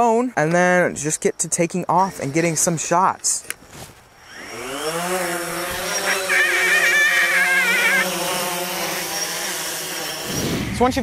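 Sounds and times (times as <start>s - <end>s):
drone propellers buzzing: 4.2s - 10.7s.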